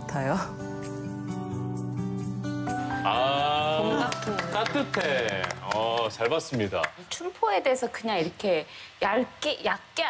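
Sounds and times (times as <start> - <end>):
background music with held notes: 0.0 - 6.2.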